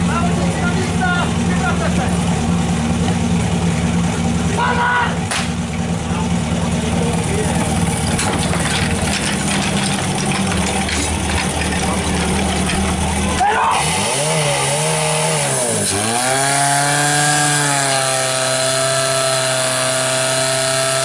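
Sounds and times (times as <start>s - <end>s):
pump engine running and revving: 0.0s - 21.0s.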